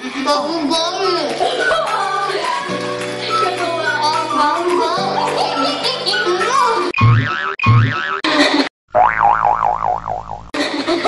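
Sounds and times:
cartoon boing sound effect: 0:07.0 - 0:08.2, 0:09.0 - 0:10.5.

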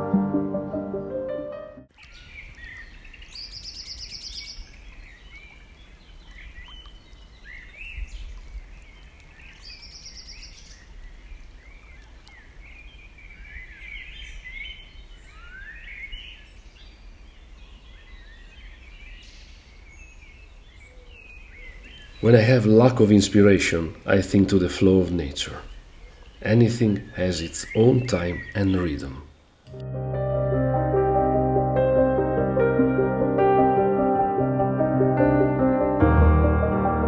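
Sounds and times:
wild birds chirping: 0:01.9 - 0:29.7.

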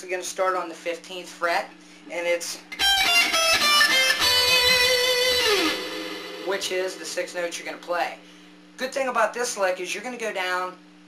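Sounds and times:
electric guitar notes: 0:02.7 - 0:07.6.

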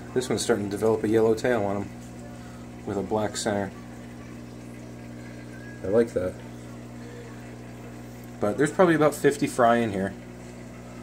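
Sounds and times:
aquarium air pumps humming: 0:00.0 - 0:11.0.

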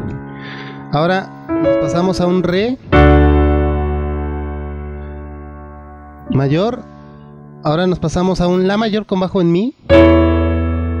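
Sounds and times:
digital piano chord ringing: 0:00.0 - 0:11.0.

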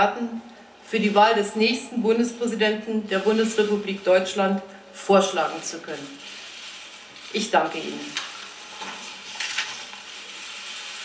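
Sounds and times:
steady hiss: 0:00.4 - 0:11.0.

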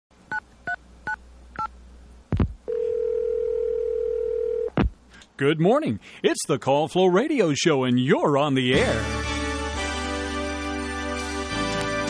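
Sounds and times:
telephone ringback tone: 0:02.7 - 0:04.7.

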